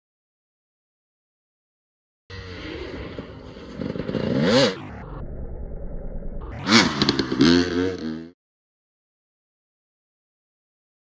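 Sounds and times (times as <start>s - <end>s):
dirt bike engine revving: 2.3s - 5.2s, 6.4s - 8.4s.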